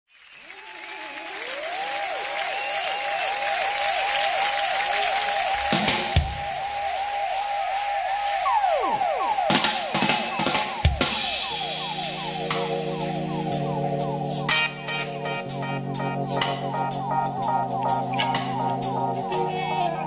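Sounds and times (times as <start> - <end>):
audience applause: 0.1 - 13.9
repeating swooping tone: 8.4 - 20.0.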